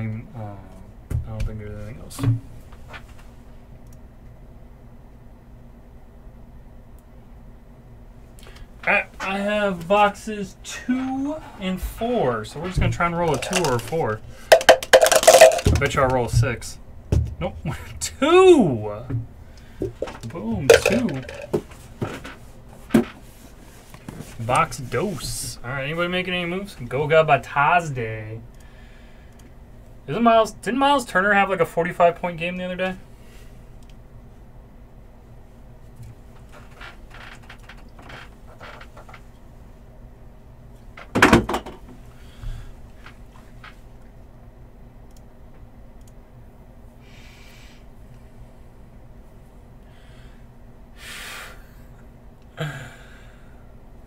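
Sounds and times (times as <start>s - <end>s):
handling clicks and rustles: 12.6s - 16.3s, 19.8s - 23.2s.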